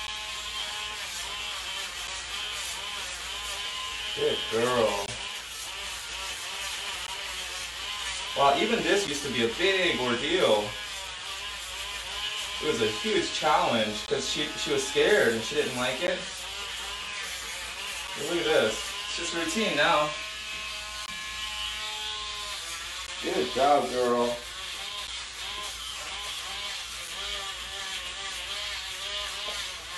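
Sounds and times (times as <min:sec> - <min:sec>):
electric nail grinder buzzing: 0:00.0 - 0:29.9.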